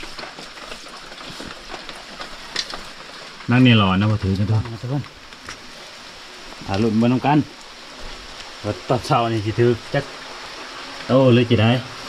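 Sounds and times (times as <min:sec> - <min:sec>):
rain falling: 0:00.0 - 0:12.0
water trickling among rocks: 0:00.0 - 0:12.0.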